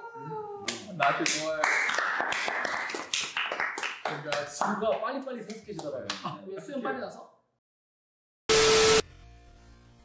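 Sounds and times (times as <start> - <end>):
people clapping: 0.7 - 6.4.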